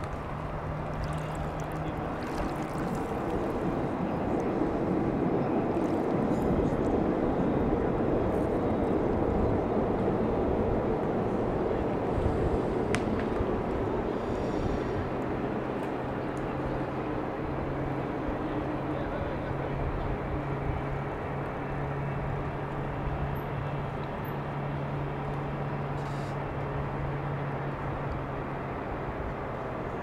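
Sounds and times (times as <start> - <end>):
distant motors humming: 0.0 - 30.0
rushing water and city noise: 0.0 - 30.0.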